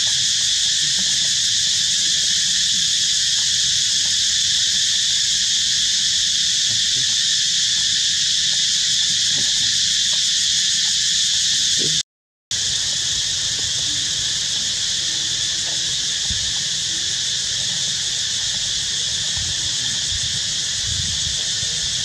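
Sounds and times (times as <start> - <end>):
high-pitched insect chorus: 0.0 - 22.0.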